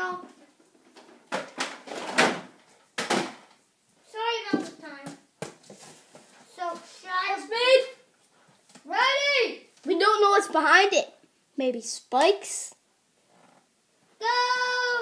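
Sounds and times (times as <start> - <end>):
children calling out: 14.2 - 15.0.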